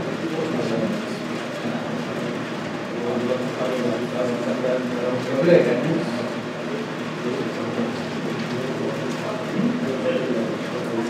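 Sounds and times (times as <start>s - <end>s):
air conditioner hissing: 0.0s - 11.0s.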